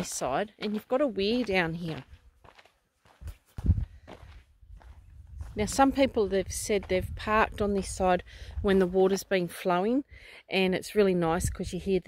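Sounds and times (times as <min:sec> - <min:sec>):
footsteps on dirt and leaves: 0:00.0 - 0:09.5.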